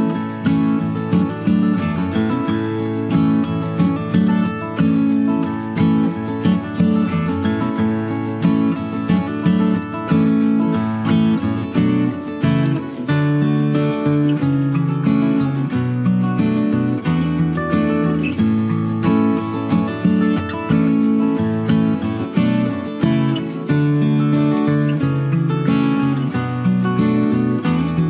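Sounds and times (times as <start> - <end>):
acoustic guitar music: 0.0 - 28.0.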